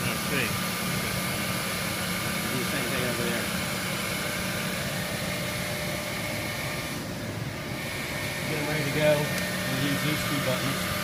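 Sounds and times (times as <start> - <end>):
drilling machine motor humming: 0.0 - 11.0.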